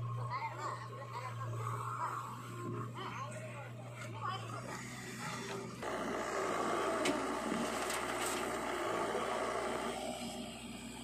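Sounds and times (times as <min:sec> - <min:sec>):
diesel engines running: 0:00.0 - 0:11.0.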